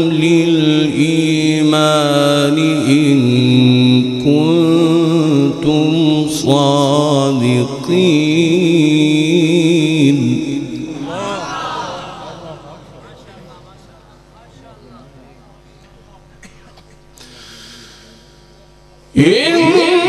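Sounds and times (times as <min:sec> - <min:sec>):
man chanting melodically: 0:00.0 - 0:14.0, 0:19.1 - 0:20.0.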